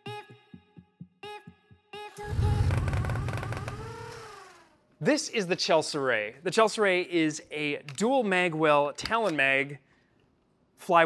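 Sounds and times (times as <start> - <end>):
deep rumbling hit: 2.2 - 4.3
rising and sliding tone: 2.2 - 4.6.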